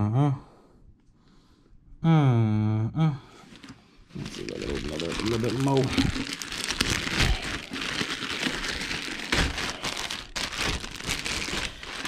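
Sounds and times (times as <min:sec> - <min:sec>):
plastic bag crinkling: 0:03.6 - 0:12.0.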